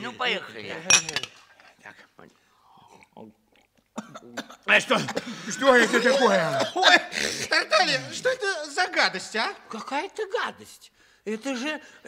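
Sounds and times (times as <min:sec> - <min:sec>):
glasses clinking: 0:00.8 - 0:01.4.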